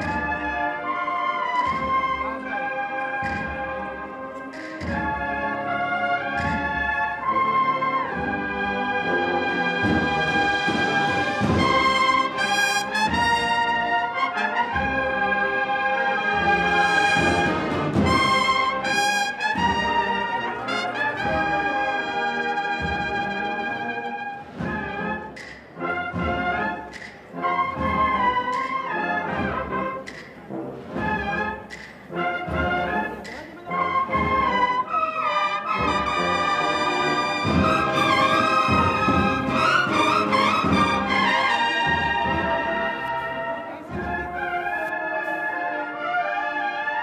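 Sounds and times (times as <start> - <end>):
brass band playing slow march: 0.0 - 47.0.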